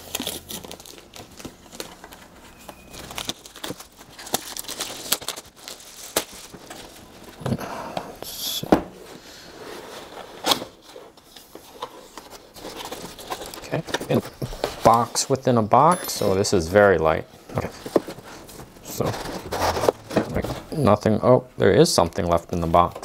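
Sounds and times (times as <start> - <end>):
plastic wrap crinkling and tearing: 0.0 - 7.4.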